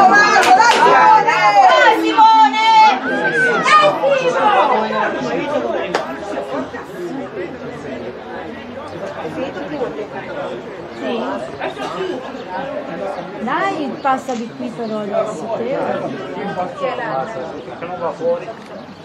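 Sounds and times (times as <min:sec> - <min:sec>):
babble of overlapping voices: 0:00.0 - 0:19.0.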